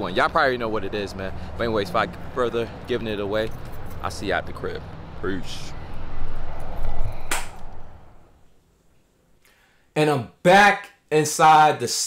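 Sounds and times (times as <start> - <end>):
wind on microphone: 5.5 - 8.3
sharp click: 7.2 - 7.8.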